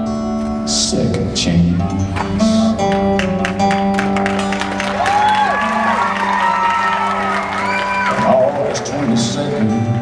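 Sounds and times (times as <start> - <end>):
acoustic guitars playing: 0.0 - 10.0.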